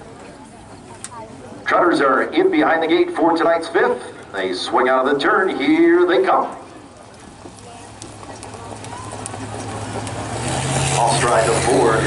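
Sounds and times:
pickup truck engine running: 6.8 - 12.0.

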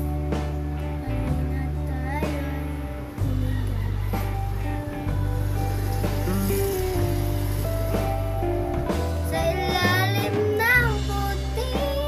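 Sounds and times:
girl singing a ballad: 0.0 - 12.0
instrumental backing track: 0.0 - 12.0.

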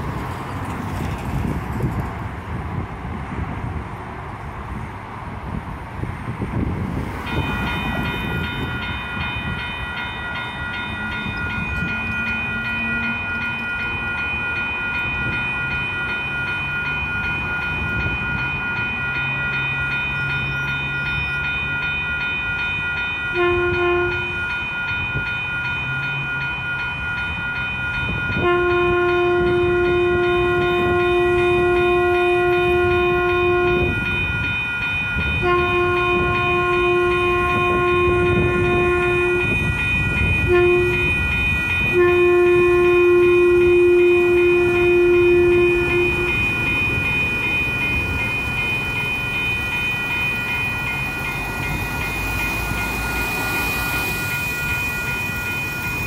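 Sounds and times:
railroad crossing bell ringing: 0.0 - 2.0, 4.7 - 56.0
train rumble: 0.0 - 56.0
train horn blasts: 23.3 - 24.5, 28.3 - 34.0, 35.4 - 46.5.

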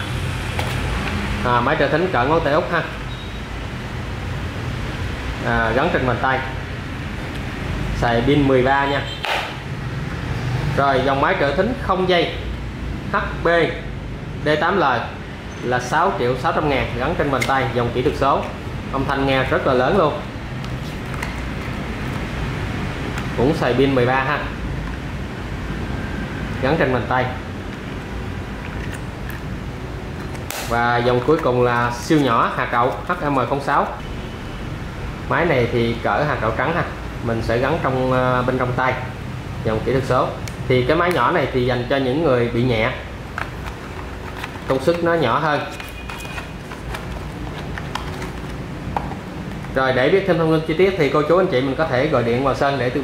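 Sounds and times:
cardboard boxes tapping and rustling: 43.3 - 49.8.

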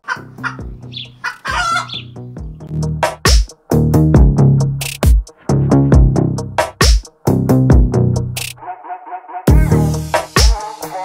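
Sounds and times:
short clucking calls: 0.0 - 2.2
electronic music: 1.5 - 8.6, 9.5 - 11.0.

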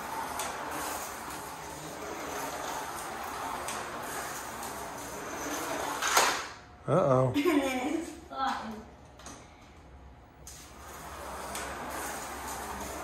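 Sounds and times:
slot car motor whirring: 0.0 - 6.5, 10.6 - 13.0.

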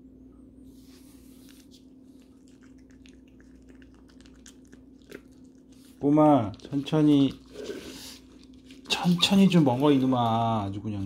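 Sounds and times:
puppy crunching dry kibble: 2.1 - 11.0.

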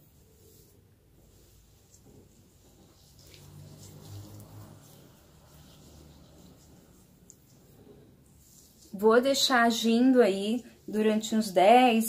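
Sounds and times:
hands rustling through damp hair: 0.0 - 11.7.

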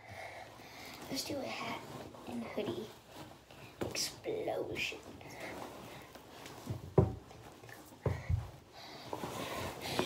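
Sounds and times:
clothing rustling: 0.0 - 10.0
thumps in a bathtub: 6.6 - 7.3.

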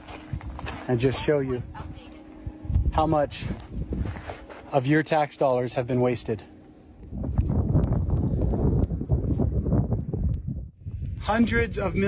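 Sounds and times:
wind buffeting microphone: 0.0 - 4.5, 6.9 - 12.0.

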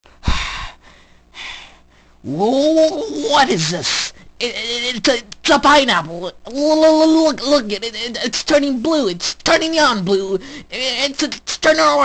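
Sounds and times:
person gasping: 0.2 - 2.2, 10.4 - 10.7
soft breath: 0.2 - 2.2.

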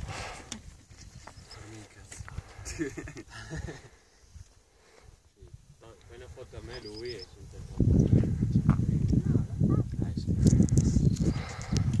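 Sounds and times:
wind buffeting microphone: 0.0 - 4.5, 5.1 - 12.0.

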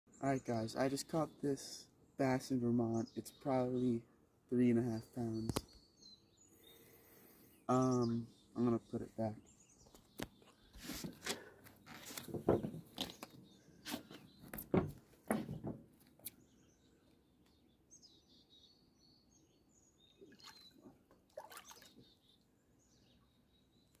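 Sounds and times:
small birds chirping: 0.1 - 24.0
knocks and bumps: 12.2 - 13.1, 14.5 - 15.9.

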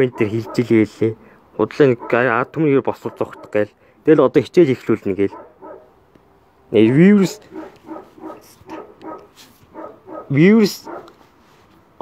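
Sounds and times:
man calling out loudly: 0.0 - 4.3, 10.3 - 11.0.

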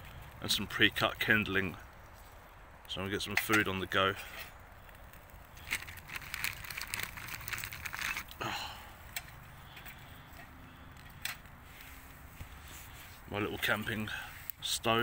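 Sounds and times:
kindling crackling and popping: 0.0 - 15.0.

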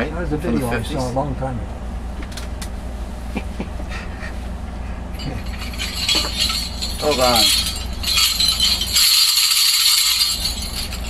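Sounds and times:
high-pitched jingling rattle: 5.1 - 11.0.

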